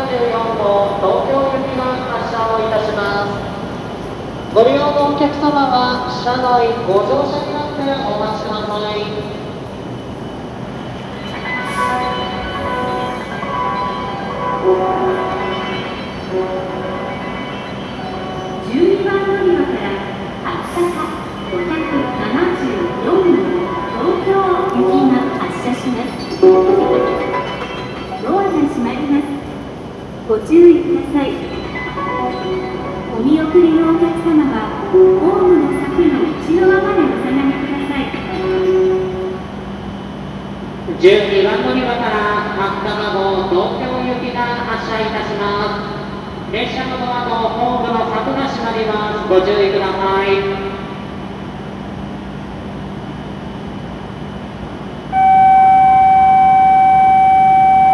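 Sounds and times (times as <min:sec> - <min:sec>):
train hum and hiss: 0:00.0 - 0:57.9
steady tone: 0:55.1 - 0:57.9.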